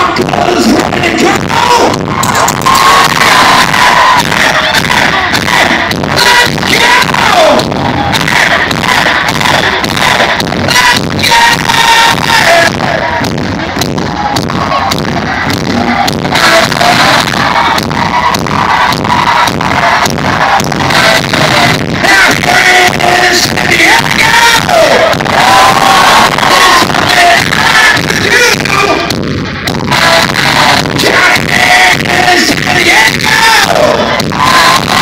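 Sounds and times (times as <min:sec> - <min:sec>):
distorted guitars: 0:00.0 - 0:35.0
live metal band playing: 0:00.0 - 0:35.0
pounding drum beat: 0:00.0 - 0:35.0.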